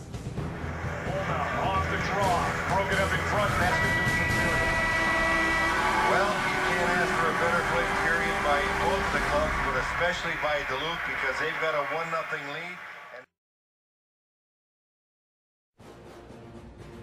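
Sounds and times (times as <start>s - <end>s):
excited broadcast voices: 0.6s - 13.3s
arena horn: 0.7s - 13.1s.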